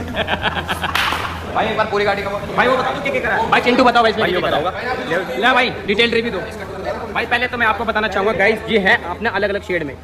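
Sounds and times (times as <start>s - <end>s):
men shouting and laughing: 0.0s - 1.9s.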